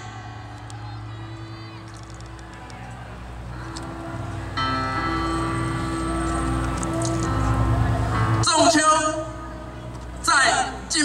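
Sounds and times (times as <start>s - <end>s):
music over public-address system: 0.0s - 11.0s.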